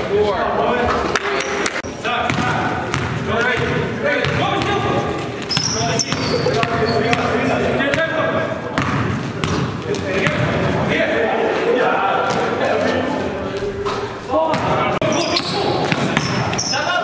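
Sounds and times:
players' voices and calls: 0.0s - 17.0s.

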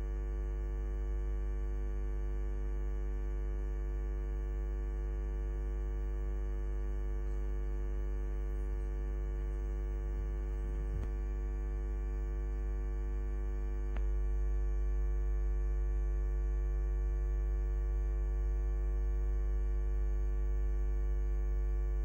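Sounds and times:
electrical mains hum: 0.0s - 22.0s.

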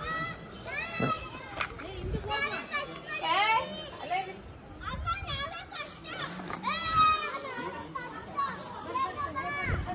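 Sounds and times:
children talking and calling out: 0.0s - 9.9s.

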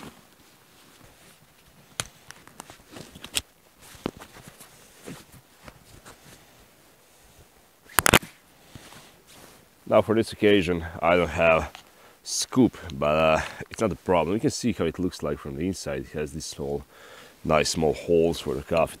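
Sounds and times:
clicks and rustles of camping gear: 0.0s - 9.7s.

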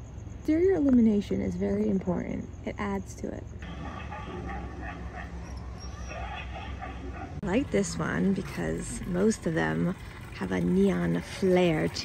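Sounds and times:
low background rumble: 0.0s - 12.0s
dog barking: 3.6s - 7.4s.

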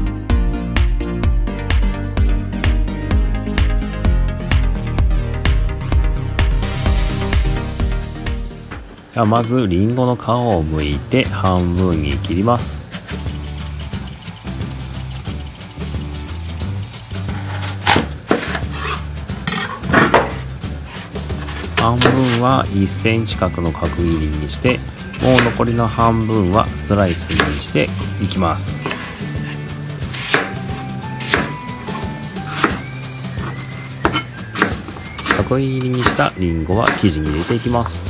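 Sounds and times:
background music with bass line: 0.0s - 38.0s
knife slicing apple: 16.8s - 22.6s, 25.0s - 37.8s
knife striking cutting board: 17.5s - 20.5s, 21.4s - 22.4s, 25.1s - 25.8s, 27.0s - 27.8s, 28.8s - 37.7s.

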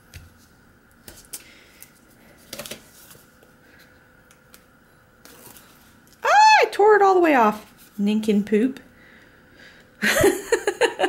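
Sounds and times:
crinkles: 4.3s - 6.2s.

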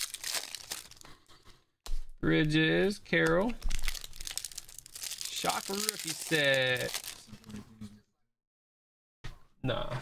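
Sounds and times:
foil pack tearing and crinkling: 0.0s - 1.0s, 3.7s - 7.4s.

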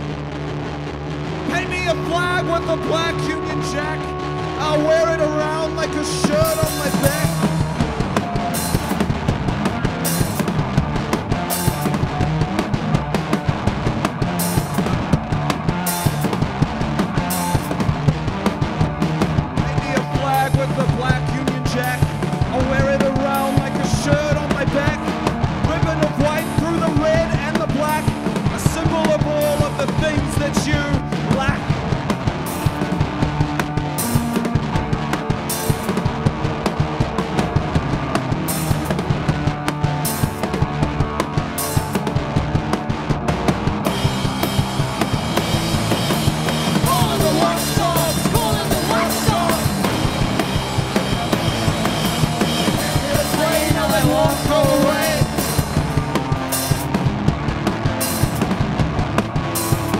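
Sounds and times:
drum kit: 0.0s - 59.9s
electric guitar: 0.0s - 59.9s.

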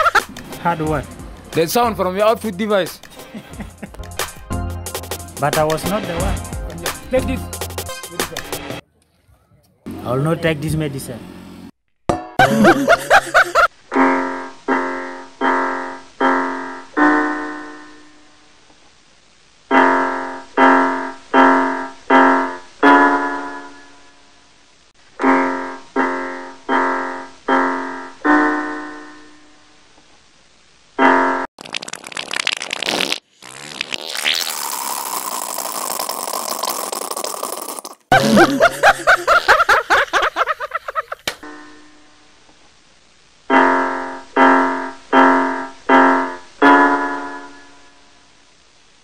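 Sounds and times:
piano-like keyboard notes: 14.0s - 18.3s, 25.2s - 29.5s.

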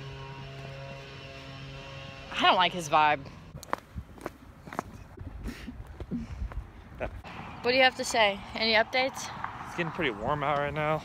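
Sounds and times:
low hum: 0.0s - 8.6s.

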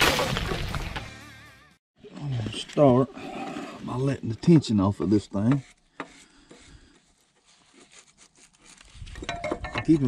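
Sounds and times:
wrench scraping and clicking: 5.4s - 10.0s.

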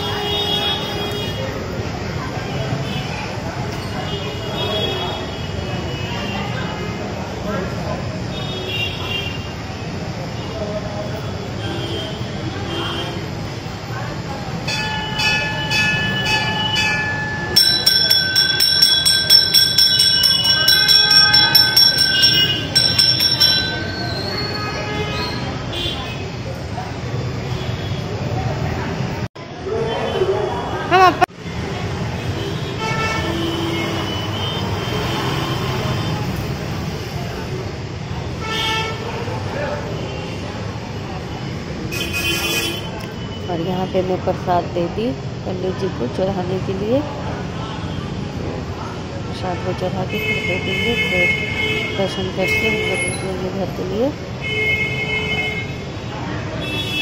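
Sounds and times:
voices: 0.0s - 57.0s
temple bell struck: 14.7s - 24.2s
higher-pitched bell rung rapidly: 14.7s - 24.7s.

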